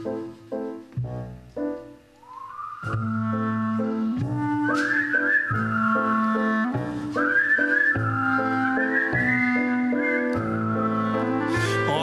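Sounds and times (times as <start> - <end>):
whistled melody: 0.0 - 0.9, 1.6 - 12.0
double bass: 0.0 - 1.9, 2.8 - 12.0
stage piano chords: 0.0 - 12.0.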